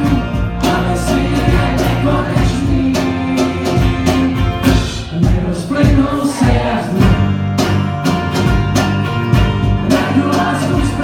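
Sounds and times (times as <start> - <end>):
acoustic guitar: 0.0 - 11.0
bass guitar: 0.0 - 11.0
steady drum beat: 0.0 - 11.0.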